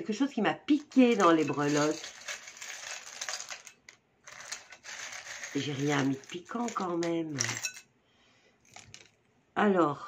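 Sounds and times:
charms clicking and rattling: 0.7s - 7.9s, 8.6s - 9.2s.

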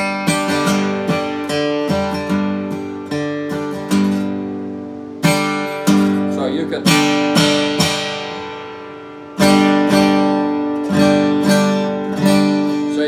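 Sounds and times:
acoustic guitar strummed hard: 0.0s - 13.0s.

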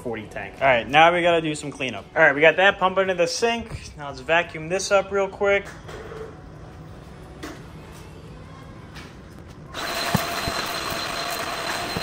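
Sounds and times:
vacuum cleaner motor whine: 9.8s - 12.0s.

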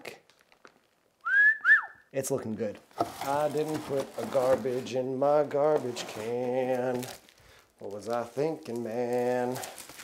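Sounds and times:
person wolf whistling: 1.2s - 2.0s.

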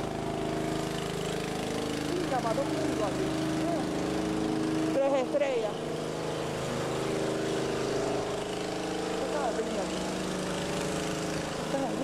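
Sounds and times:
engine droning hum: 0.0s - 12.0s
street traffic: 0.0s - 12.0s.

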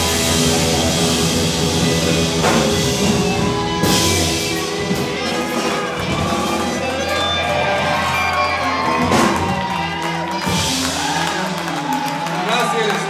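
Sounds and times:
audience cheering and whooping: 0.0s - 13.0s
rock band holding a chord: 0.0s - 13.0s.

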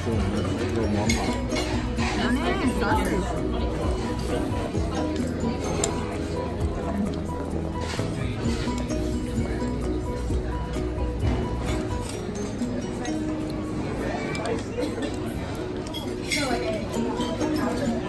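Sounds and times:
cutlery clinking on ceramic plates: 0.0s - 7.0s, 10.8s - 18.0s
murmur of diners talking: 0.0s - 18.0s
music: 0.0s - 18.0s.

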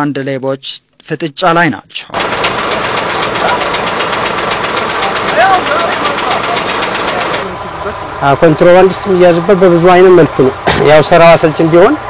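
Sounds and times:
truck diesel engine idling: 2.1s - 12.0s
faint voices: 4.9s - 8.4s.

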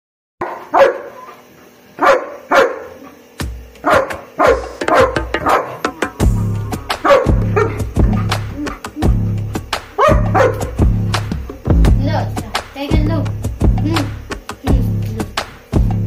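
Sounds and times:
dog barking sharply: 0.4s - 1.3s, 2.0s - 3.0s, 3.8s - 5.9s, 7.0s - 8.4s, 10.0s - 10.7s
music with heavy bass beat: 3.4s - 16.0s.

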